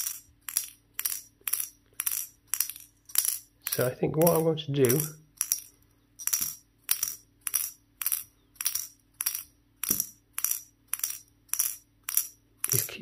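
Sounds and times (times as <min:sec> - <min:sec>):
metal ball rattling on metal cone: 0:00.0 - 0:13.0.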